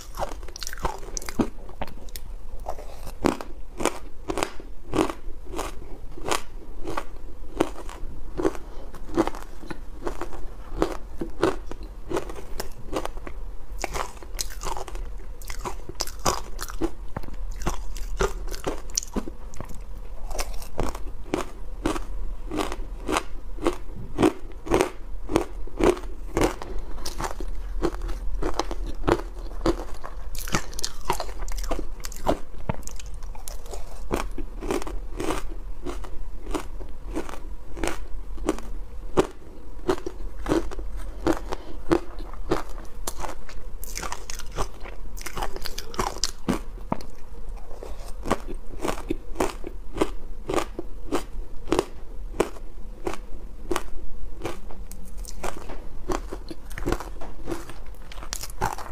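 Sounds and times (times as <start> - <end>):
person chewing ice crunches: 0.0 - 58.9.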